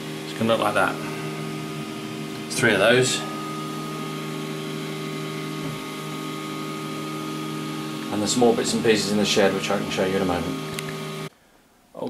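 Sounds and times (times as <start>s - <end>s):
printer motors and fan humming: 0.0s - 11.3s.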